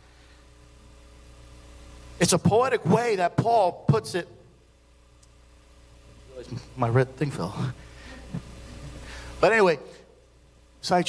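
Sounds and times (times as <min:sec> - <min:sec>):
room tone hum and hiss: 0:00.0 - 0:11.0.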